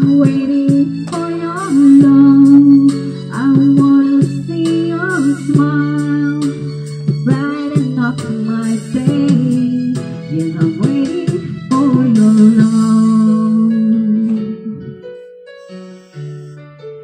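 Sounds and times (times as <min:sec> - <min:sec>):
woman singing into a microphone: 0:00.0 - 0:15.0
karaoke backing music: 0:00.0 - 0:17.0.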